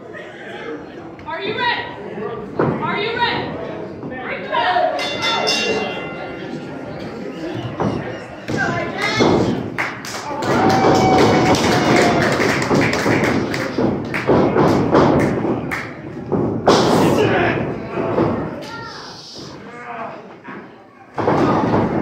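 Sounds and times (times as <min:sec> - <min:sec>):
people shouting in hall: 0:10.2 - 0:12.4
slaps and thuds on wrestling ring: 0:10.4 - 0:17.2.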